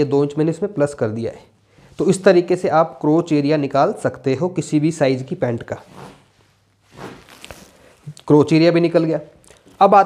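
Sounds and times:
chalk scraping on fabric: 0:06.9 - 0:07.7.

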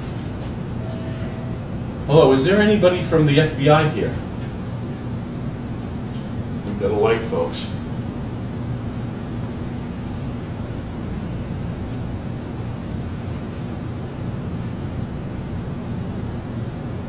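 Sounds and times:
steady low hum with hiss: 0:00.0 - 0:17.0.

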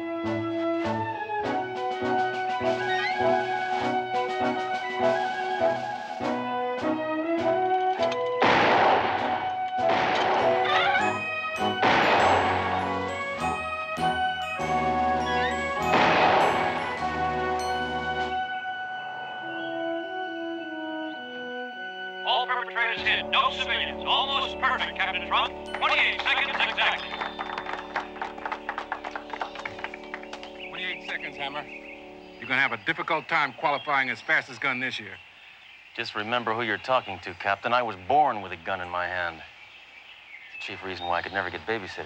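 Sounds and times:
brass music score: 0:00.0 - 0:32.7
loud gunshot: 0:08.4 - 0:10.7, 0:11.8 - 0:12.8, 0:15.9 - 0:16.8
small group applauding: 0:25.2 - 0:31.3.

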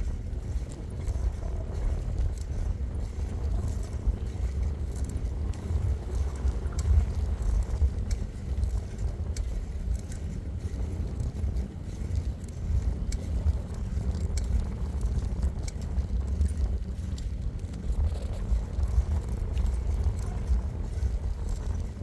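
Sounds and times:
tyres rolling on asphalt: 0:00.0 - 0:22.0
wind buffeting microphone: 0:00.0 - 0:22.0.

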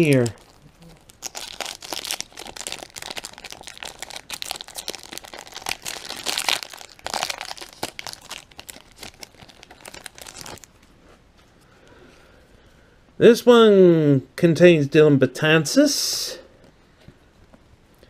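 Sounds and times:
foil wrapper tearing and crinkling: 0:00.0 - 0:10.7.

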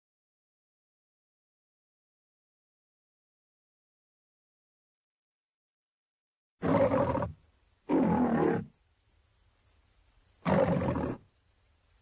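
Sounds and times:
lion roaring: 0:06.6 - 0:08.7, 0:10.4 - 0:11.2
faint low hum: 0:06.8 - 0:12.0.

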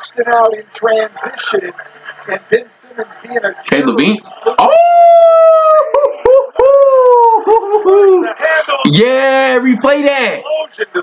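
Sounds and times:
man yelping: 0:04.6 - 0:08.3
man shouting excitedly: 0:04.7 - 0:06.0.

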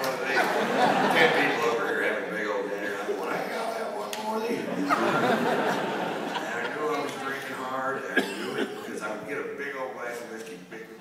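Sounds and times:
sharp cough: 0:08.1 - 0:09.0.

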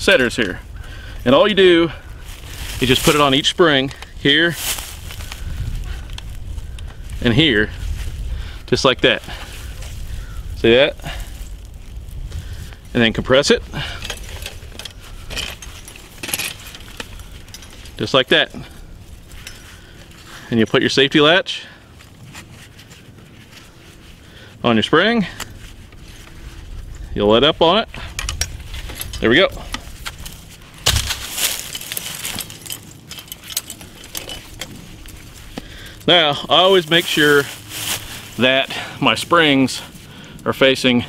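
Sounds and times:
metal trap chain jangling: 0:13.8 - 0:18.6, 0:30.8 - 0:35.1.

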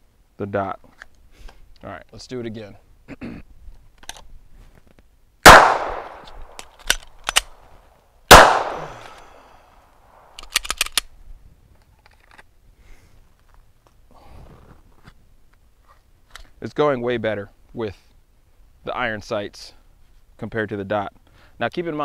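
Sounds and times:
pistol shots with echo: 0:05.4 - 0:06.6, 0:08.3 - 0:09.4
magazine reload clicks: 0:05.4 - 0:07.6, 0:08.3 - 0:09.4, 0:10.2 - 0:11.1.

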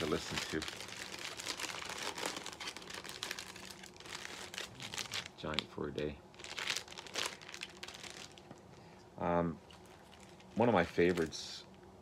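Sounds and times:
plastic sleeve crinkling: 0:00.0 - 0:08.7, 0:09.6 - 0:11.8.

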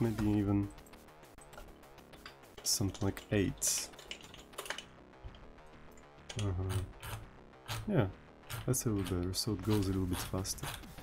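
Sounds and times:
faint music: 0:00.0 - 0:11.0
computer keyboard keystrokes: 0:03.9 - 0:04.8.

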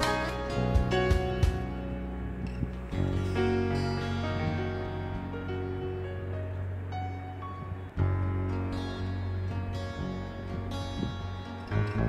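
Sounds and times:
soft instrumental background music: 0:00.0 - 0:12.0.

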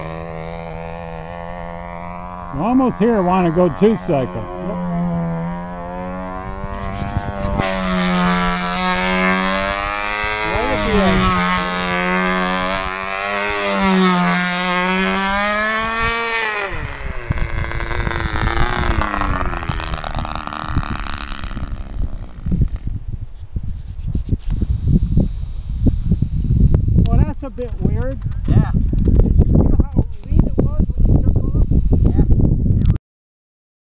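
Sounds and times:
gusty wind rumble on microphone: 0:00.0 - 0:33.0
model airplane engine: 0:00.0 - 0:33.0.

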